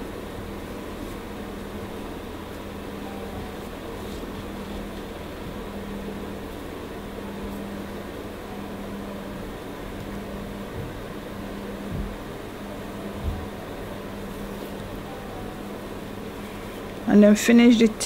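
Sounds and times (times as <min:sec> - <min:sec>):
room noise hum and hiss: 0:00.0 - 0:18.0.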